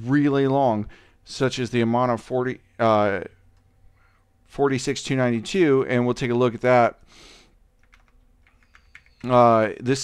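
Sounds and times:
computer keyboard typing: 0:07.8 - 0:09.4.

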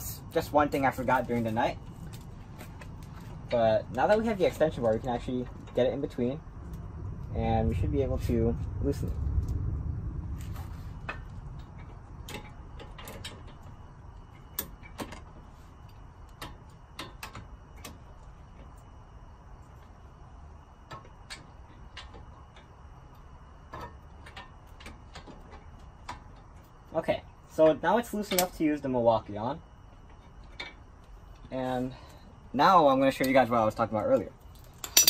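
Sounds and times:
low rumble: 0:00.0 - 0:14.5
metallic clicks and knocks of tools: 0:28.3 - 0:28.6.

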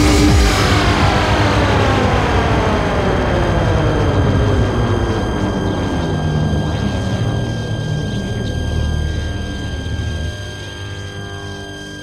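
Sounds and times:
low rumble: 0:00.0 - 0:11.4
synthesizer sweep gliding downward: 0:00.0 - 0:12.0.

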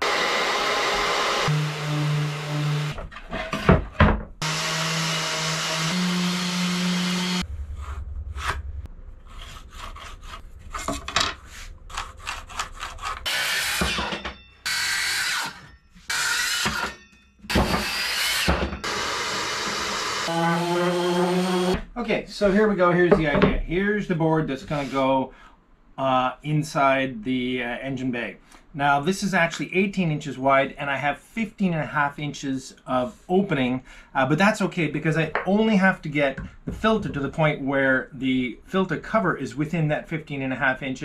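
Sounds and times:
circular saw cutting plywood: 0:00.0 - 0:03.6, 0:04.4 - 0:08.6, 0:12.2 - 0:21.8.

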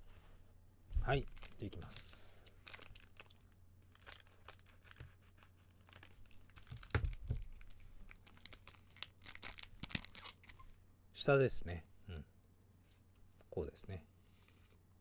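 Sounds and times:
foil pack crinkling: 0:01.1 - 0:10.6.

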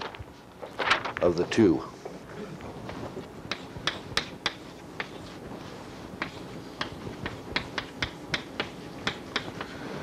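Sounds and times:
chalk tapping on blackboard: 0:02.9 - 0:10.0.

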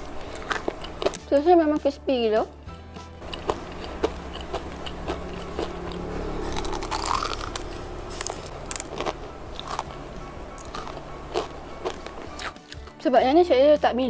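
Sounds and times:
crispy crepe crunching: 0:06.5 - 0:10.0.

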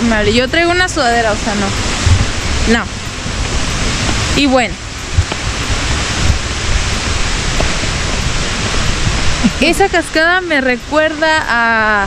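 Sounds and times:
waterfall roaring: 0:00.0 - 0:12.0
low bumps on microphone: 0:01.9 - 0:04.4, 0:05.0 - 0:09.7.

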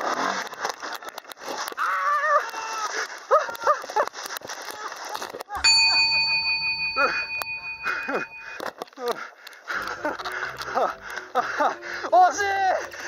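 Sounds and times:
steady bell-like ring: 0:05.6 - 0:08.7.

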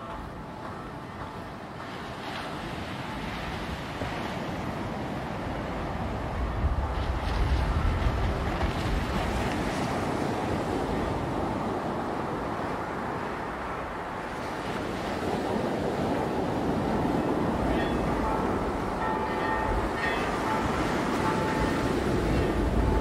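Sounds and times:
surf breaking on beach: 0:00.7 - 0:23.0.

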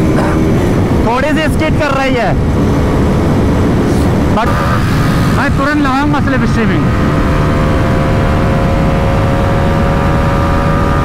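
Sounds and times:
wind buffeting microphone: 0:00.0 - 0:11.0
motorcycle engine accelerating: 0:02.4 - 0:11.0.

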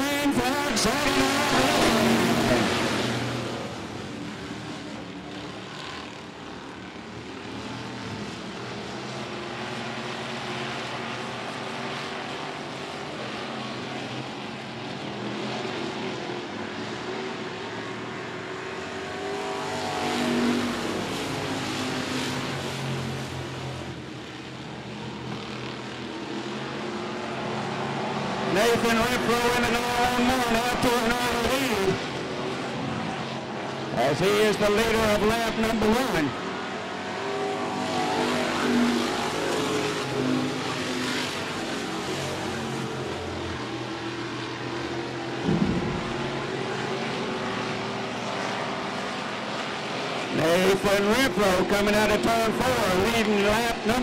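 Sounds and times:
stock car engines racing: 0:00.0 - 0:54.0.

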